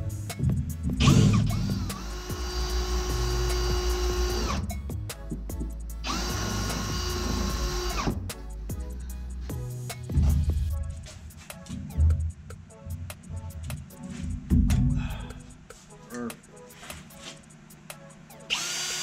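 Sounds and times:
electric drill boring plastic: 1.0s - 4.7s, 6.1s - 8.2s, 18.5s - 19.0s.

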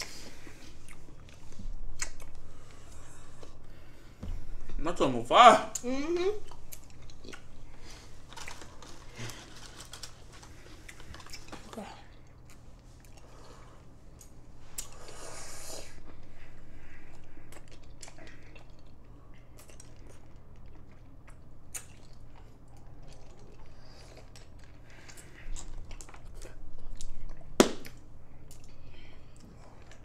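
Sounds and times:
small clicks and crunches: 8.3s - 11.8s.

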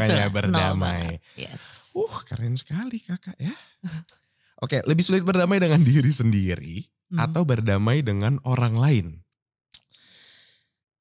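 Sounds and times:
mouth click: 9.8s - 10.1s
soft breath: 10.0s - 10.7s.

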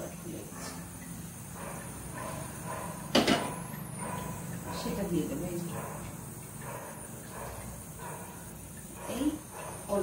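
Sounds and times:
steady low hum: 0.0s - 10.0s
kitchen utensils knocking: 3.1s - 3.6s.

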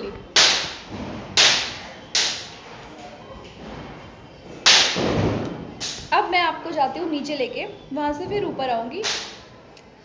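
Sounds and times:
firecrackers banging with echo: 0.3s - 2.6s, 4.6s - 6.2s, 9.0s - 9.5s.

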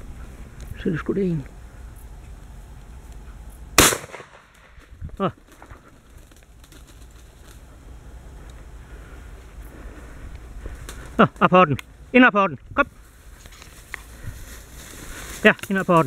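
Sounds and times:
shotgun shot: 3.8s - 4.7s.

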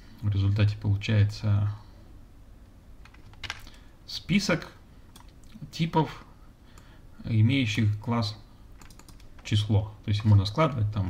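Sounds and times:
faint room noise: 0.0s - 11.0s
light computer clicks: 8.8s - 9.5s.

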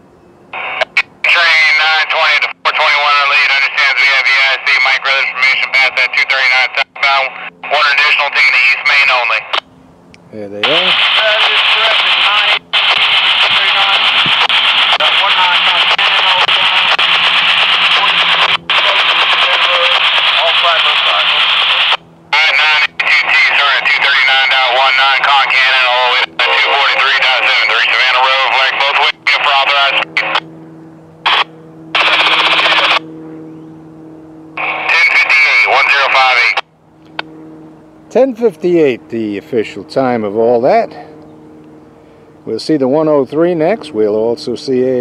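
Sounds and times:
radio squelch: 0.6s - 9.6s, 10.4s - 30.6s, 31.2s - 33.2s, 34.6s - 37.5s
radio voice transmission: 0.6s - 9.6s, 10.4s - 30.5s, 31.2s - 33.1s, 34.6s - 37.3s, 38.1s - 41.2s, 42.4s - 45.0s.

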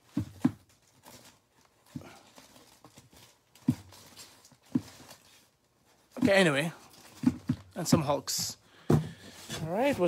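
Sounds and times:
plastic bags rustling: 0.0s - 10.0s.

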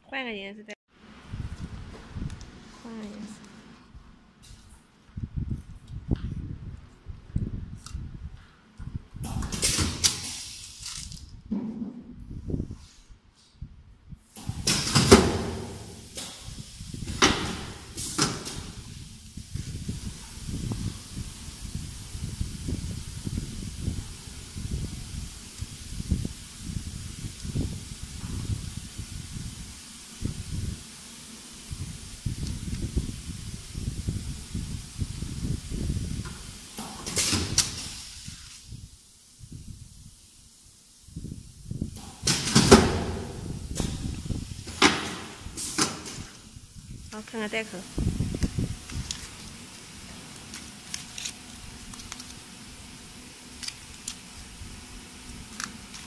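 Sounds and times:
air hiss bursts from machine: 9.2s - 11.2s, 14.2s - 56.0s.

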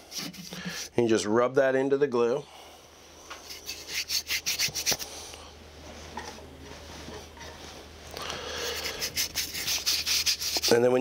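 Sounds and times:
fingers rubbing sawdust into glue: 3.4s - 5.0s, 8.7s - 10.8s.

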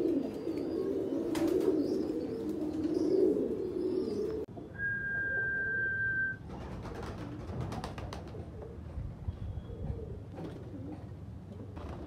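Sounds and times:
pigeons cooing: 0.0s - 12.0s.

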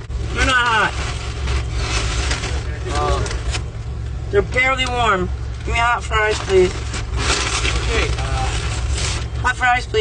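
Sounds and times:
car engine idling: 0.0s - 10.0s
paper bag rustling: 0.2s - 3.7s, 6.3s - 9.6s.

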